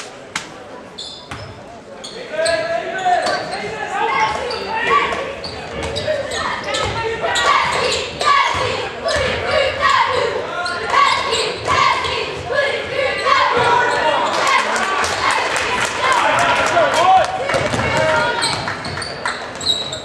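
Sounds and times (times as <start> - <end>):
voices and shouts: 2.2 - 18.7.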